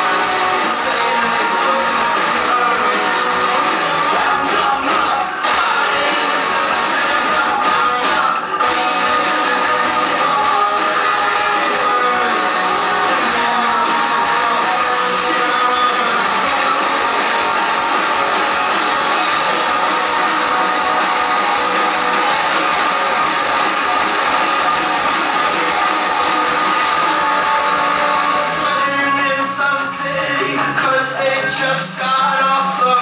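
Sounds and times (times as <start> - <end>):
rock band playing live: 0.0 - 33.0.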